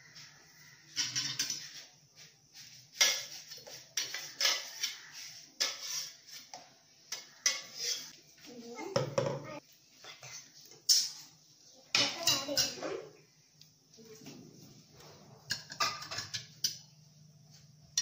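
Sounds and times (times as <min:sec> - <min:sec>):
spoon clinking and scraping on metal: 0:00.9 - 0:01.9, 0:02.9 - 0:06.5, 0:07.1 - 0:08.2, 0:12.0 - 0:12.8, 0:15.4 - 0:16.9.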